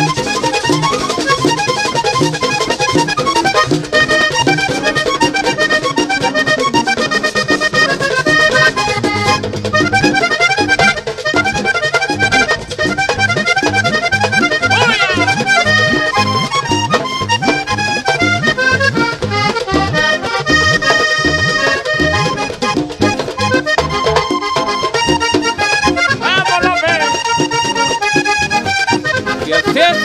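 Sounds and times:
accordion melody: 0.0s - 30.0s
percussion: 0.0s - 30.0s.

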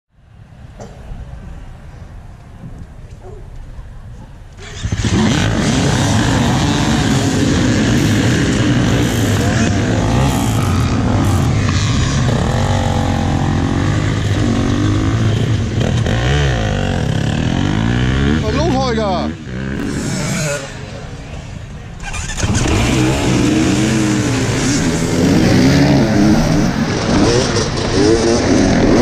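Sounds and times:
dirt bike engines revving: 4.4s - 29.0s.

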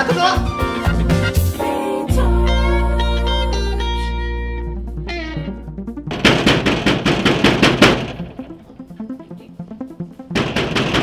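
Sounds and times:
rapid sharp percussive hits: 6.1s - 8.8s, 10.4s - 11.0s.

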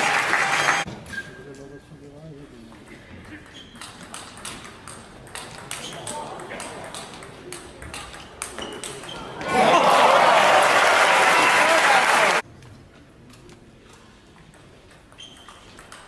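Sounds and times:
crowd cheering and applause: 0.0s - 0.9s, 9.4s - 12.4s.

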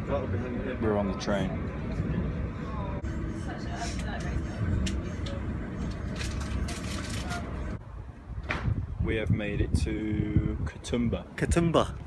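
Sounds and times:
faint voices: 0.0s - 7.8s
passenger train rumbling and rattling: 0.0s - 7.8s.

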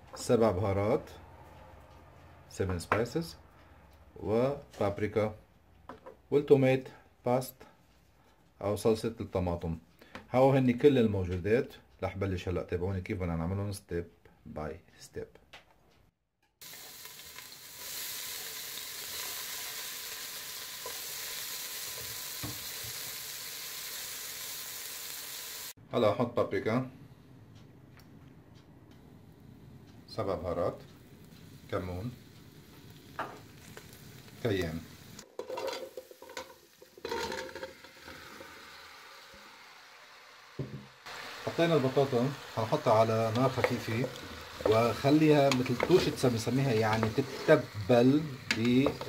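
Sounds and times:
onion sizzling in oil: 16.6s - 25.8s, 30.4s - 49.0s
metal spoon scraping pot: 35.4s - 37.8s, 45.5s - 47.8s.

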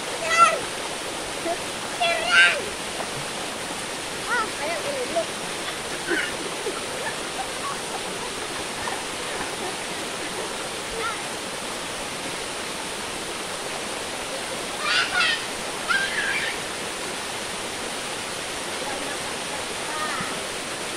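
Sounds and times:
small waterfall rushing: 0.0s - 20.9s.

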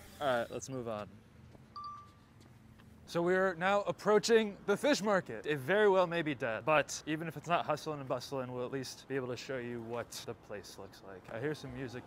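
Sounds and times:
short electronic beep: 1.7s - 2.2s.

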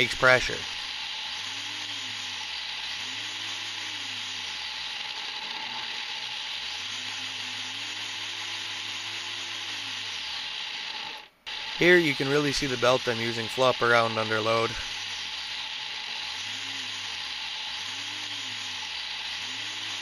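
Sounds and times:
supercharger whirring with hiss: 0.0s - 20.0s.

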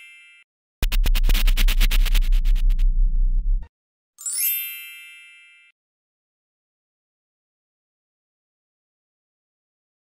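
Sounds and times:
bright chime with rising shimmer: 4.2s - 5.7s.

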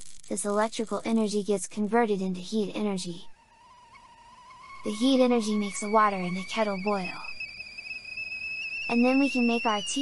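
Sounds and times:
tea kettle whistling: 3.5s - 10.0s
faint hiss: 3.8s - 10.0s.

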